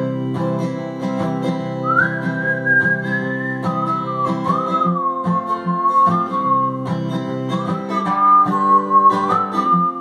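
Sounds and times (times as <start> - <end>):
acoustic guitar strumming: 0.0 - 10.0
person whistling a melody: 1.7 - 10.0.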